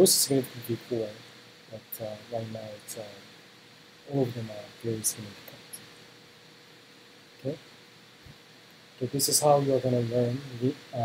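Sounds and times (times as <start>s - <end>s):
faint hiss: 0.0s - 11.0s
thin buzzing hum: 0.0s - 11.0s.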